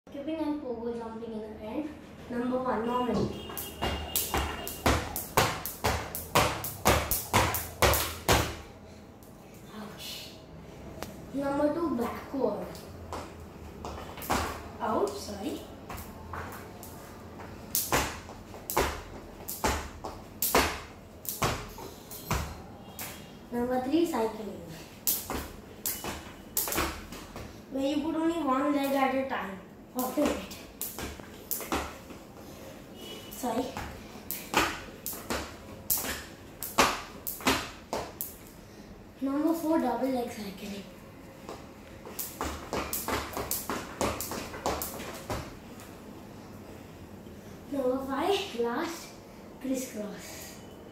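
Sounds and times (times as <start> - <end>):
shoes landing on tiles: 3.2 - 8.6, 13.1 - 14.7, 17.8 - 23.2, 25.1 - 27.6, 30.1 - 32.2, 33.6 - 38.4, 41.5 - 45.6
jump rope slapping tiles: 3.5 - 8.6, 13.1 - 15.2, 17.7 - 23.2, 25.0 - 27.5, 30.0 - 32.2, 33.3 - 38.6, 41.5 - 45.6.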